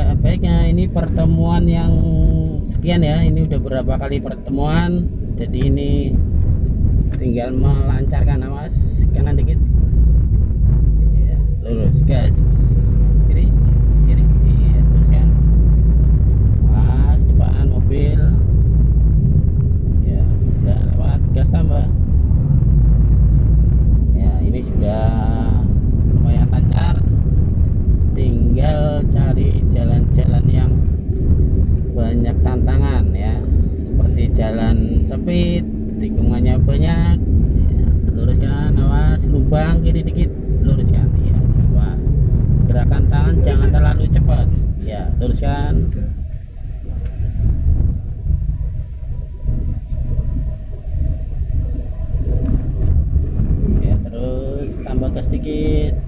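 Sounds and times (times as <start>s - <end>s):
people talking: 0.0s - 6.2s, 7.2s - 9.6s, 11.0s - 15.6s, 16.7s - 18.4s, 20.0s - 22.0s, 24.1s - 27.1s, 28.2s - 30.8s, 31.9s - 42.1s, 42.7s - 46.2s, 53.7s - 56.0s
car engine and tyres rumbling: 0.0s - 56.0s.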